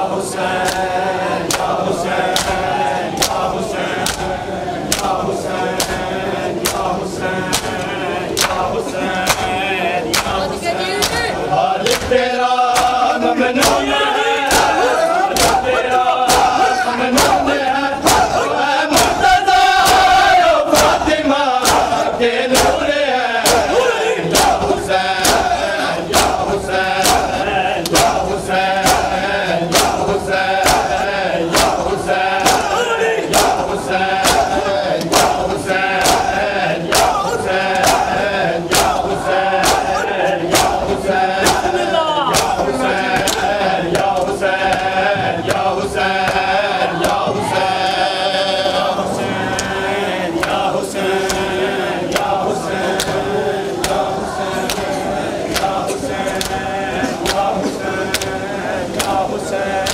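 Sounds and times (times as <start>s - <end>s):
men chanting: 0.0s - 59.9s
hands slapping bare chests: 0.6s - 2.6s, 3.2s - 3.4s, 4.0s - 4.3s, 4.9s - 5.2s, 6.6s - 6.9s, 7.5s - 8.6s, 9.2s - 10.4s, 11.8s - 12.1s, 12.7s - 13.0s, 14.5s - 15.7s, 16.3s - 16.6s, 20.8s - 21.0s, 21.6s - 22.0s, 23.4s - 26.4s, 27.0s - 28.2s, 28.8s - 30.0s, 30.6s - 31.8s, 32.4s - 33.6s, 34.2s - 35.4s, 36.0s - 39.0s, 39.6s - 40.8s, 42.3s - 42.6s, 53.8s - 54.0s, 54.6s - 54.9s, 55.5s - 55.8s, 57.2s - 57.5s, 59.0s - 59.2s.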